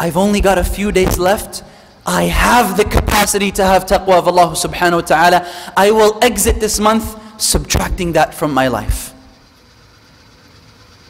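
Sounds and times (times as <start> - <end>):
man speaking: 0.0 - 9.3
faint room hiss: 0.0 - 11.0
light hum: 0.0 - 11.0.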